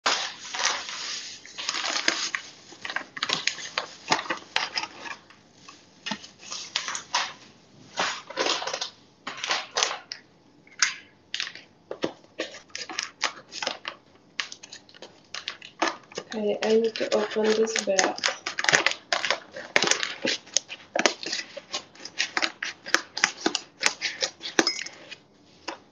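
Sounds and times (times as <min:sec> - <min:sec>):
plastic packaging crinkling: 0:00.0 - 0:10.2, 0:10.8 - 0:25.9.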